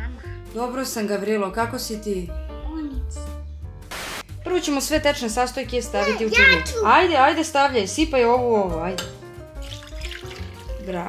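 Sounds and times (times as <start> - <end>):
background music: 0.0 - 11.0
water pouring into a ceramic bowl: 9.6 - 11.0.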